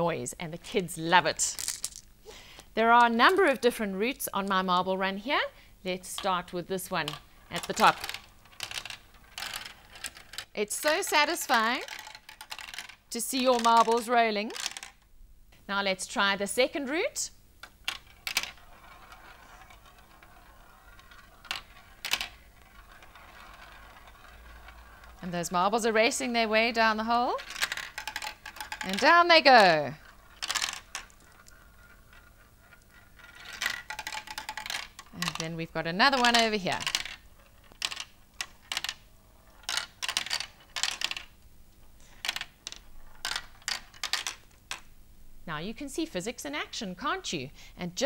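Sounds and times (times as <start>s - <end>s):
marble rolling on plastic track: 1.2s - 2.0s, 5.9s - 15.1s, 17.6s - 41.4s, 42.0s - 44.9s
marble circling in plastic funnel: 6.0s - 15.0s, 17.6s - 44.9s.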